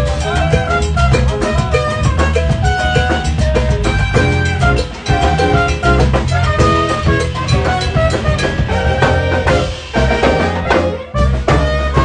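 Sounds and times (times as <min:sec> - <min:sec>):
congas: 0:00.0 - 0:12.0
latin jazz band playing: 0:00.0 - 0:12.0
trumpet: 0:00.0 - 0:12.0.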